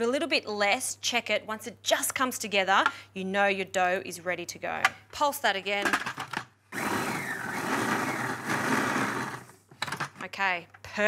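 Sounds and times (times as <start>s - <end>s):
food processor mixing dough: 6.7s - 9.6s.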